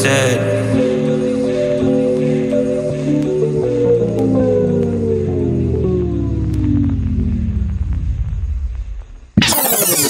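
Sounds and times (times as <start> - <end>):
beat tape-stop slowdown: 0.0 - 10.0.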